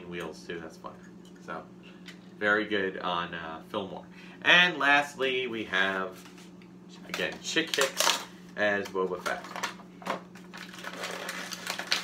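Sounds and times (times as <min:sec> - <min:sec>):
plastic packaging clicks and crinkles: 0:07.1 - 0:12.0.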